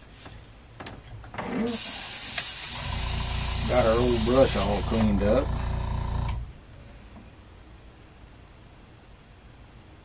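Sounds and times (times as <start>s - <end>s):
air compressor humming and hissing: 1.6s - 6.6s.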